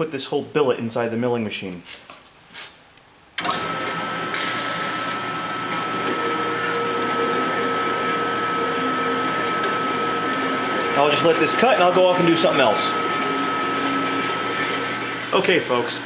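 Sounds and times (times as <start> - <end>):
metal-cutting band saw whining: 3.4 - 16.0.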